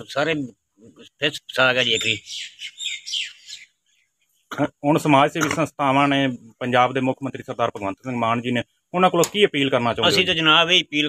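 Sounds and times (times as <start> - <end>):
bird chirping: 0.9 - 4.8.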